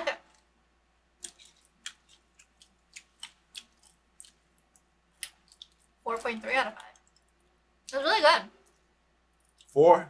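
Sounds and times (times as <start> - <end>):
crunchy chewing: 1.2 - 6.0.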